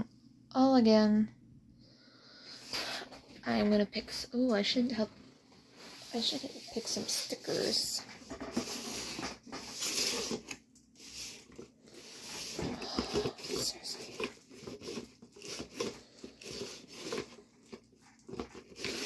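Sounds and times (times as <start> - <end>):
plastic packets rustling: 6.0 - 19.0.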